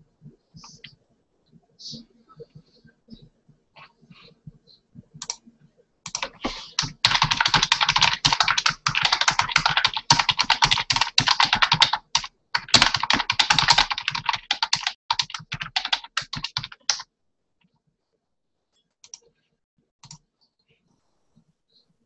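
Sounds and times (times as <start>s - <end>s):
typing on computer keyboard: 6.1s - 17.0s.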